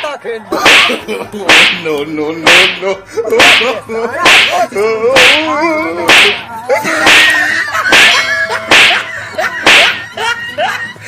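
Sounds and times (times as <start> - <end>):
loud slaps on a back: 0.0 - 1.8, 3.4 - 4.6, 6.1 - 6.4, 7.9 - 10.0.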